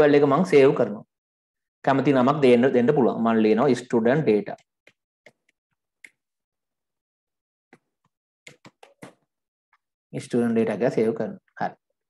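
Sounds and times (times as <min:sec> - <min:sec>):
keyboard keystrokes: 0:08.5 - 0:09.2.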